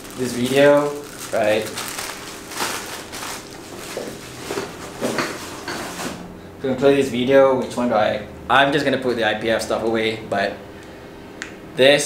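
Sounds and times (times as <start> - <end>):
plastic bag rustling: 0.0 - 6.2.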